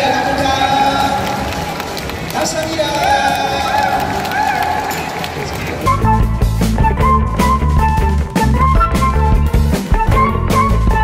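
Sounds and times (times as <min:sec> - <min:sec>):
large crowd noise: 0:00.0 - 0:11.0
rock music: 0:05.8 - 0:11.0.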